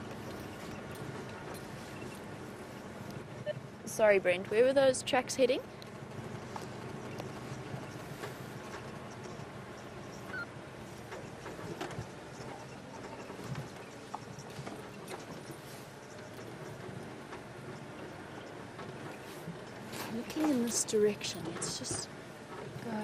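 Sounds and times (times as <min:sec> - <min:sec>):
vehicle engine hum: 0:00.0 - 0:23.0
vehicle knocks and rattles: 0:06.0 - 0:22.8.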